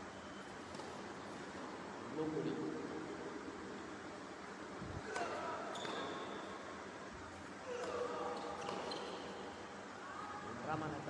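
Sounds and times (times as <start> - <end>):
tennis ball bouncing: 0.6 - 1.1
sneakers squeaking on court: 5.1 - 6.5, 7.7 - 9.6.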